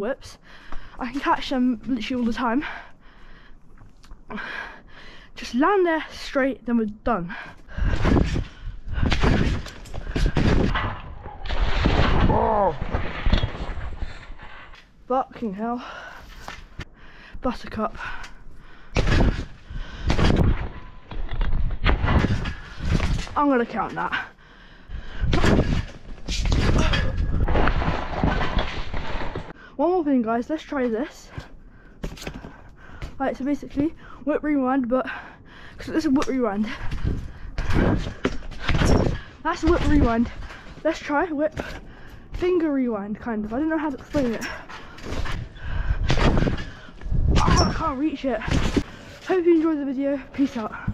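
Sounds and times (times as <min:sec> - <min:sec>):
jostling noise: 0:07.7 - 0:14.8, 0:18.9 - 0:24.3, 0:24.9 - 0:29.6, 0:36.5 - 0:50.9
scooter thudding on trampoline: 0:07.8 - 0:14.2, 0:36.2 - 0:42.6
scooter crashing onto trampoline: 0:09.2 - 0:14.1.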